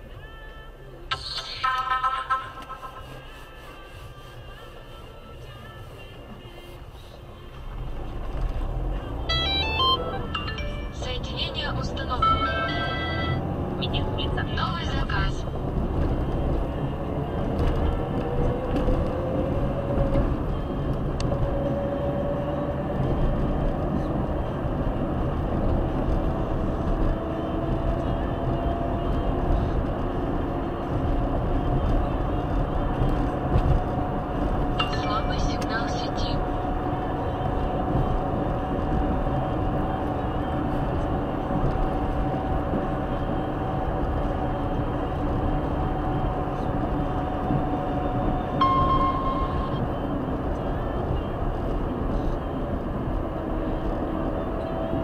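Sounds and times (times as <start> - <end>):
engine whine: 0.0 - 55.0
car engine accelerating: 1.1 - 55.0.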